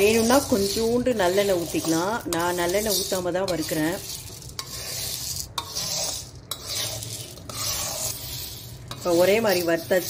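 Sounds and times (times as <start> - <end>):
metal spoon scraping lentils in pan: 0.0 - 10.0.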